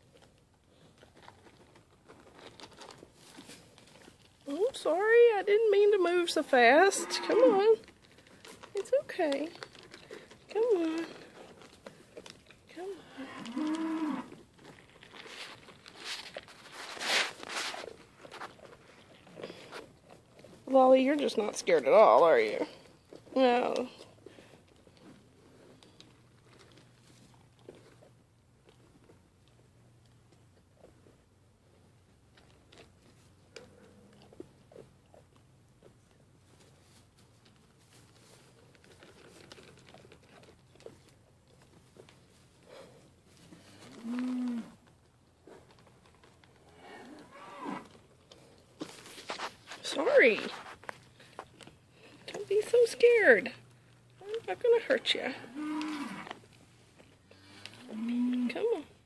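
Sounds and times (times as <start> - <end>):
hooves rustling on straw: 12.9 - 23.5, 40.9 - 57.8.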